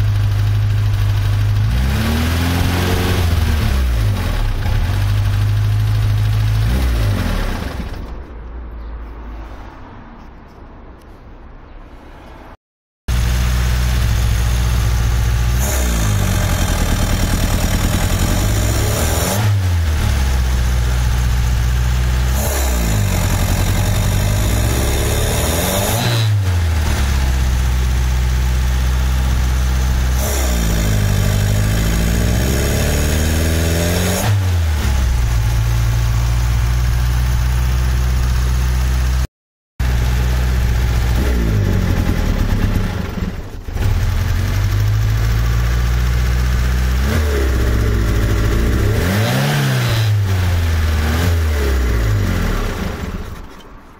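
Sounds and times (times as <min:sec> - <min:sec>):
car engine revving: 0:00.0 - 0:08.2, 0:13.1 - 0:53.6.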